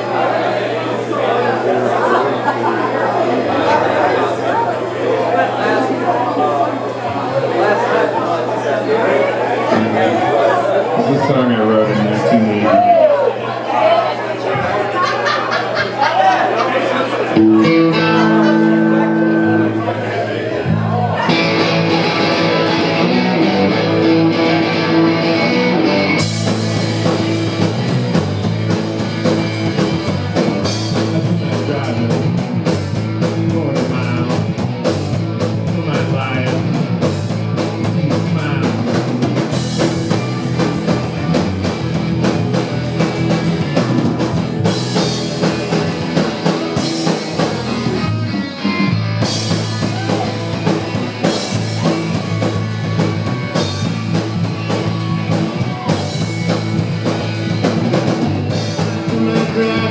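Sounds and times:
rock band playing: 9.5s - 59.9s
electric guitar: 9.6s - 12.8s, 17.3s - 59.9s
drums with cymbals: 25.4s - 59.9s.

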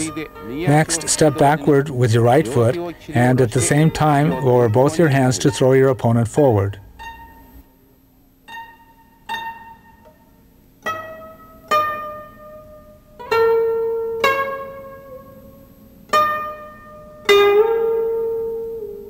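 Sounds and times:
plucked string instrument notes: 0.0s - 19.0s.

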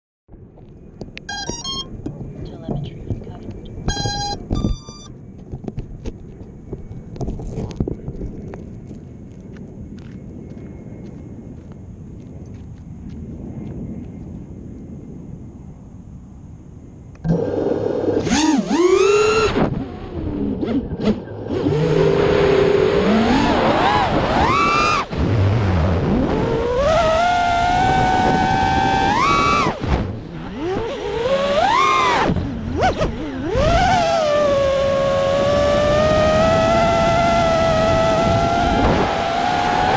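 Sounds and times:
drone motors whining: 1.1s - 9.0s, 17.2s - 39.9s
short electronic beeps: 1.3s - 2.1s, 3.6s - 5.1s.

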